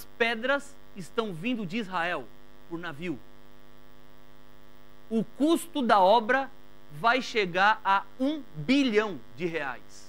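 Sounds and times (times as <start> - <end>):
electrical mains hum: 0.0 - 10.0
man's voice: 5.1 - 10.0.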